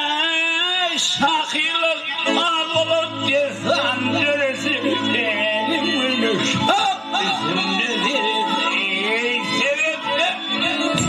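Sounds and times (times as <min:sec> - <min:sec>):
man singing into a microphone: 0:00.0 - 0:11.0
held accompaniment: 0:01.3 - 0:11.0.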